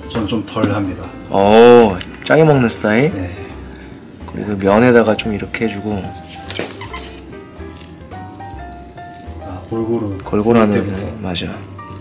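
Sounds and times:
soft background music: 0.0s - 12.0s
hot water pouring into cup: 1.3s - 12.0s.

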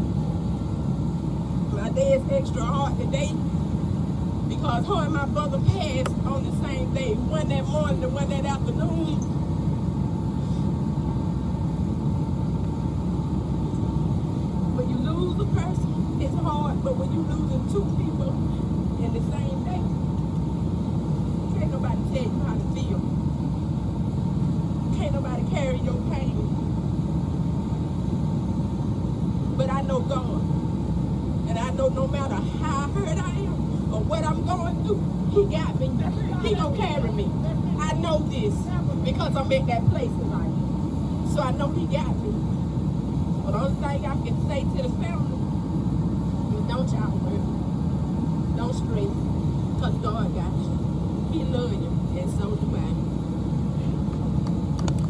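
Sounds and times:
steady low rumble: 0.0s - 55.0s.

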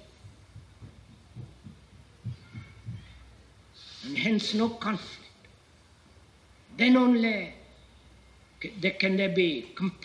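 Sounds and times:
faint low thumps: 0.0s - 3.7s
low steady hum: 0.0s - 10.0s.

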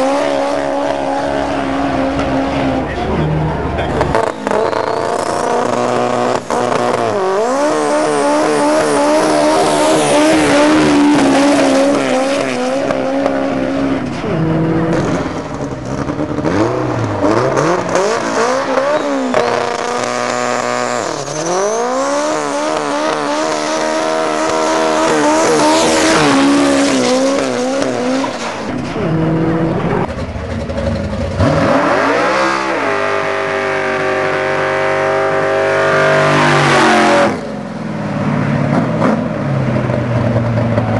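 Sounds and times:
drag car engines revving: 0.0s - 40.9s.

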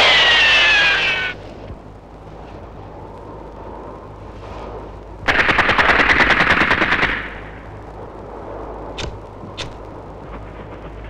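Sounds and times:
falling whistling tones: 0.0s - 1.4s.

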